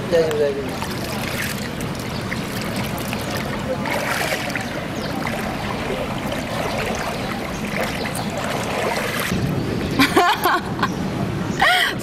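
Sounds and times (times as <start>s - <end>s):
pool water sloshing and lapping: 0.1s - 10.0s.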